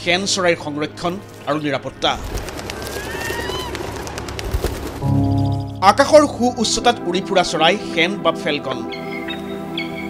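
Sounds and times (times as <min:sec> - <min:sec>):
bird whistled call: 0:08.9 - 0:10.0.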